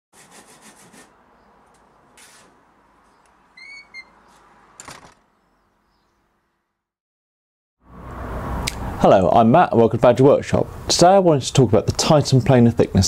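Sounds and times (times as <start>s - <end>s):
hand saw cutting wood: 0.2s - 1.2s
high squeak: 3.6s - 4.3s.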